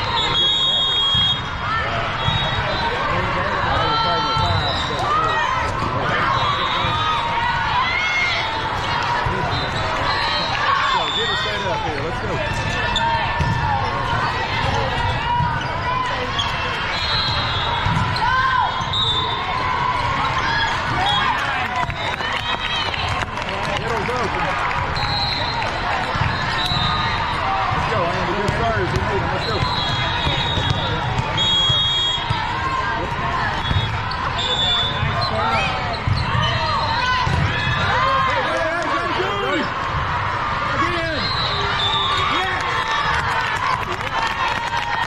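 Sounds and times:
chatter of many voices: 0.0 - 45.0
referee whistle blasts: 0.1 - 1.5, 2.2 - 3.0, 16.9 - 19.4, 24.9 - 25.7, 26.3 - 27.4, 29.3 - 32.4, 33.6 - 37.2, 40.9 - 42.4
volleyballs hit and bouncing: 3.7 - 7.8, 11.6 - 18.4, 25.6 - 40.2.

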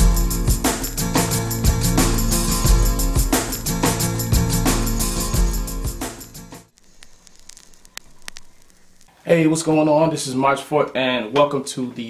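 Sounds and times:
faint crackling hiss: 6.7 - 11.1.

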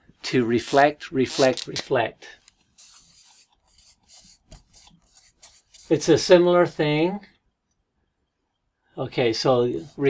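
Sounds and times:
man speaking: 0.2 - 2.4, 5.9 - 7.4, 9.0 - 10.0
marker scratching on paper: 2.5 - 6.8, 9.7 - 10.0.

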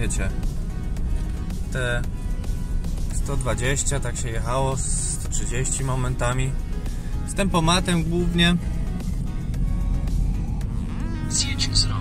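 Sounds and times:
diesel engine drone: 0.0 - 12.0
road noise inside car: 0.0 - 12.0.

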